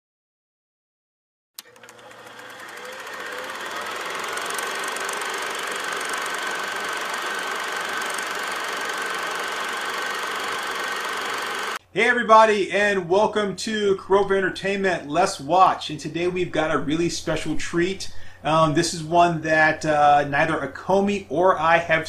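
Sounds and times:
machine-like buzzing and whirring: 1.6s - 11.8s.

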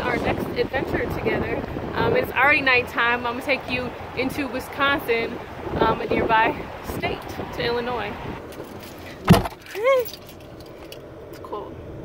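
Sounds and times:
car door shutting: 8.5s - 10.2s.

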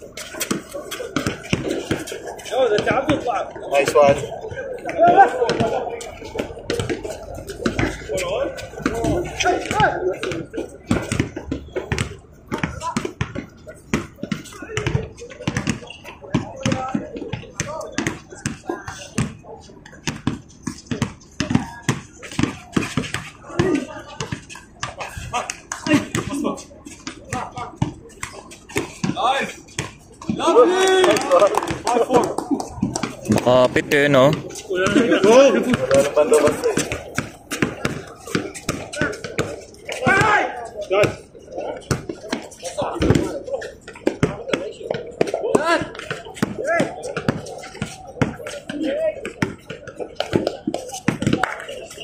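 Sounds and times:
players' voices: 0.0s - 52.0s
basketball dribbling on hard court: 1.2s - 1.8s, 20.0s - 23.8s, 34.3s - 40.4s.

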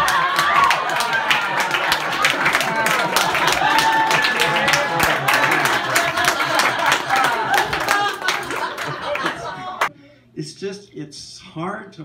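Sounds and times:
whoops and cheers: 0.0s - 5.7s
hand clapping: 0.0s - 9.4s
audience laughing: 0.0s - 9.9s.

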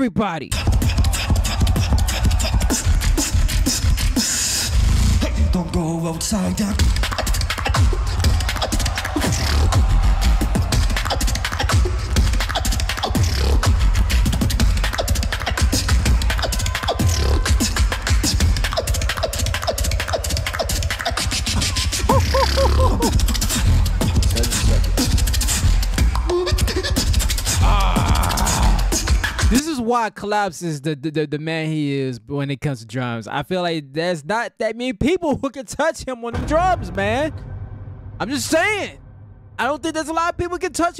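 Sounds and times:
beatboxing into a microphone: 0.4s - 9.9s, 10.9s - 29.8s
heavy continuous bass: 0.5s - 29.5s
short pitched vocal sounds: 22.2s - 23.1s.

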